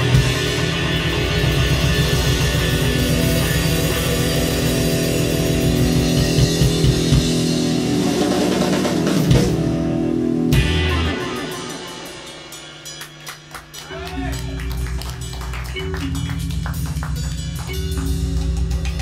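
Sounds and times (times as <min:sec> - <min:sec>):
live rock band playing loudly: 0:00.0 - 0:19.0
people clapping: 0:12.8 - 0:18.5.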